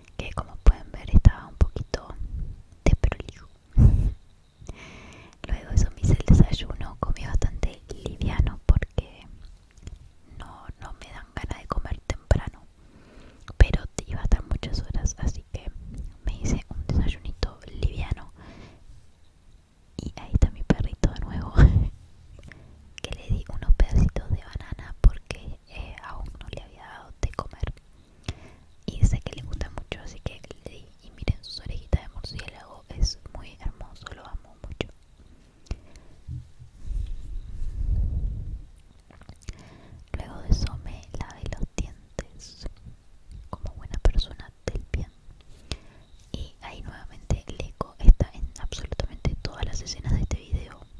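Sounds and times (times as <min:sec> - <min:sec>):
woman whispering: 0:00.0 - 0:02.2, 0:02.8 - 0:03.6, 0:05.4 - 0:09.4, 0:10.3 - 0:12.7, 0:13.4 - 0:18.4, 0:20.0 - 0:22.0, 0:23.0 - 0:27.8, 0:28.8 - 0:35.0, 0:39.1 - 0:42.8, 0:43.4 - 0:45.2, 0:46.3 - 0:50.9.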